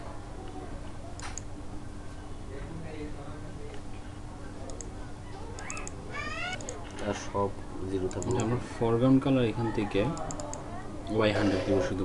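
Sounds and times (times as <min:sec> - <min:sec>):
computer keyboard keystrokes: 0:05.6 - 0:07.1, 0:08.0 - 0:08.5, 0:10.2 - 0:10.6
man speaking: 0:11.1 - 0:12.0.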